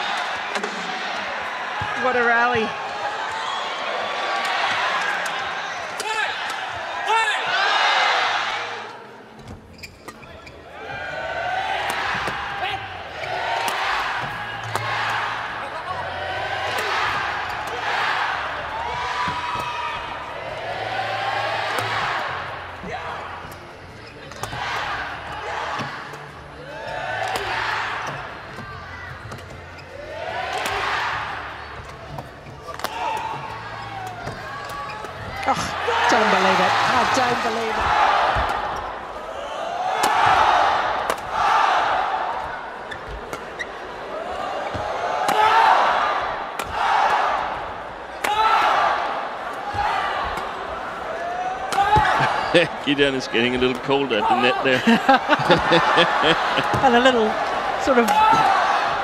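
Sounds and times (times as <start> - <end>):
crowd voices: 0.0 - 59.0
rackets hitting shuttlecock: 13.6 - 15.2, 16.6 - 18.0, 21.7 - 22.3, 24.3 - 26.3, 27.2 - 28.6, 30.5 - 31.0, 31.7 - 35.4, 44.7 - 45.6, 46.5 - 46.8.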